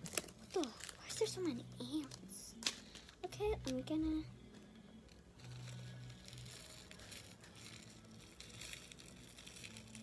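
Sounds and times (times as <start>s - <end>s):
plastic bag crinkling: 0.0s - 3.2s, 5.4s - 10.0s.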